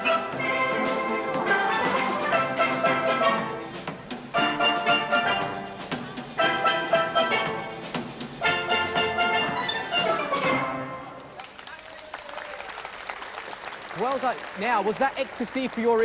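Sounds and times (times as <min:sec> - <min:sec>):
steel band playing chords: 0:00.0 - 0:11.3.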